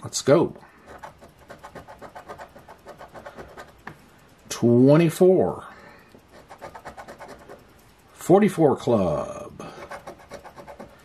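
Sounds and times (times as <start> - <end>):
coin scratching lottery ticket: 0.8 - 3.8, 6.3 - 7.7, 9.7 - 11.0.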